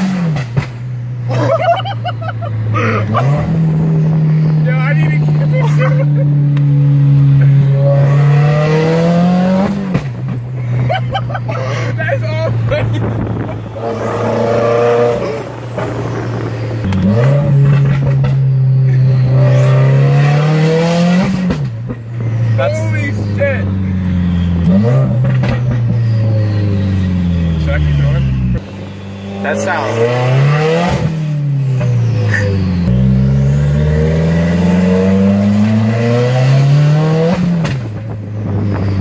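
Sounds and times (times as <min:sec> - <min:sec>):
car engine accelerating: 0:00.0 - 0:39.0.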